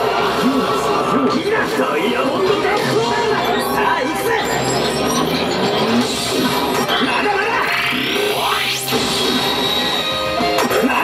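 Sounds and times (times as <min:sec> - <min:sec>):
game voice: 0:06.8 - 0:08.8.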